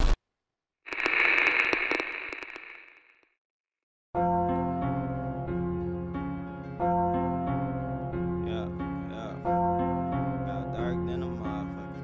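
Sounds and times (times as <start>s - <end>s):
crackling static hiss with clicks: 0.9s - 3.2s.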